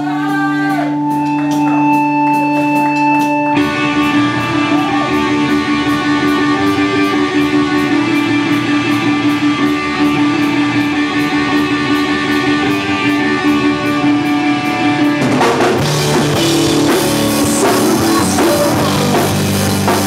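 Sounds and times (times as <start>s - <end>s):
distorted electric guitars: 0.0s - 20.0s
drums: 0.0s - 20.0s
punk rock band playing: 0.0s - 20.0s.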